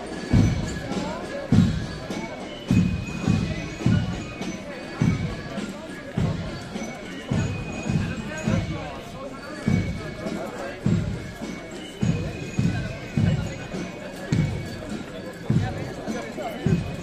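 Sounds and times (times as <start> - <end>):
bass drum beating march rhythm: 0.0 - 17.0
voices talking: 0.0 - 17.0.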